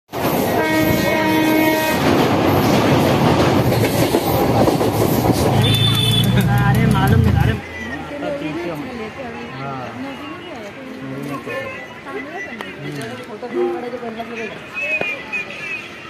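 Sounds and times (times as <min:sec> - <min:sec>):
train wheels rumbling on track: 0:00.1 - 0:07.6
train horn: 0:00.5 - 0:02.1, 0:05.5 - 0:06.8.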